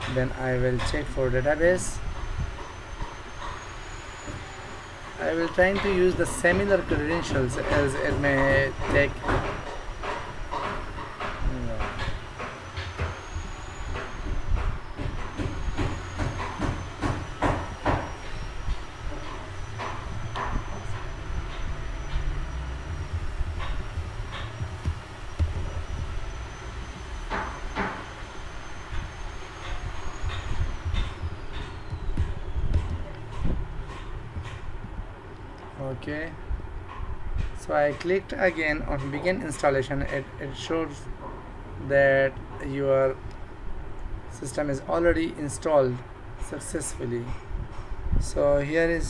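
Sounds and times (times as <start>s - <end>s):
low background rumble: 16.8s - 37.7s.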